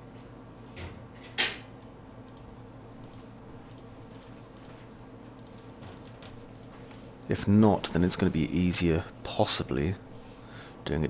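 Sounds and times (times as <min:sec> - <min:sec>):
steady low hum: 0:00.0 - 0:11.0
mouse and keyboard clicking: 0:03.0 - 0:04.8, 0:05.4 - 0:06.8.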